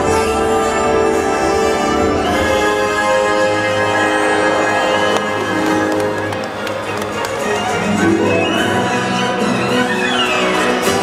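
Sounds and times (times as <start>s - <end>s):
orchestral music: 0.0s - 11.0s.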